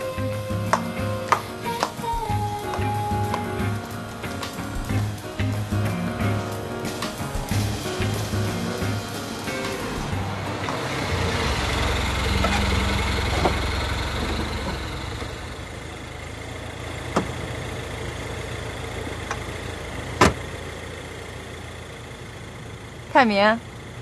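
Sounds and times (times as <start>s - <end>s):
car engine idling: 0.0s - 24.0s.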